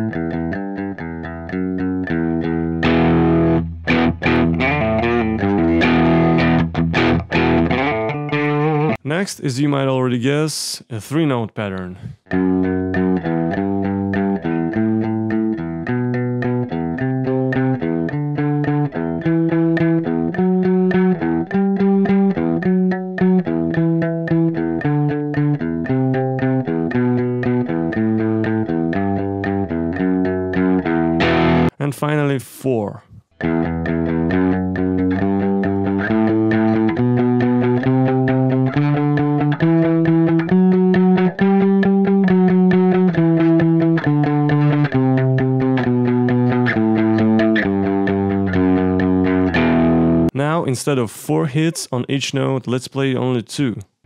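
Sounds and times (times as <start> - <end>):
electric guitar alternate picking: 0.0 - 9.1, 12.1 - 31.8, 33.2 - 50.4
guitar pitch slide: 0.0 - 9.1, 12.0 - 31.8, 33.1 - 50.3.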